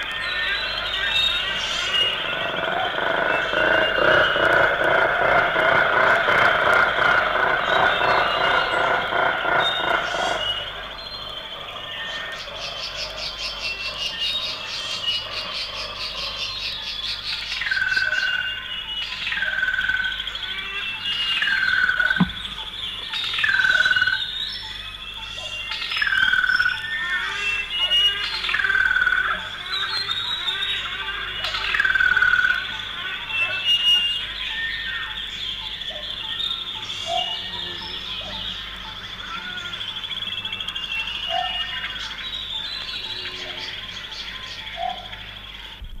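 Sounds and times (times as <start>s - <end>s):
high insect-like drone: 0.0s - 45.8s
faint bird chirps: 0.0s - 46.0s.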